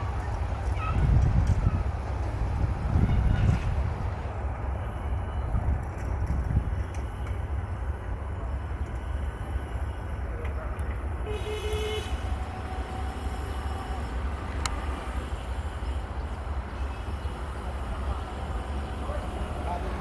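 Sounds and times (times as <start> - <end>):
wind buffeting microphone: 0.0 - 7.6
train rumbling: 0.0 - 20.0.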